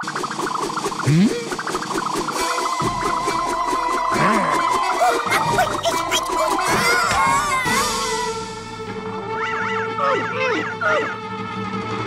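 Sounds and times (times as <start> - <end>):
cartoon background music: 0.0 - 12.0
high wavering cartoon yell: 4.9 - 8.7.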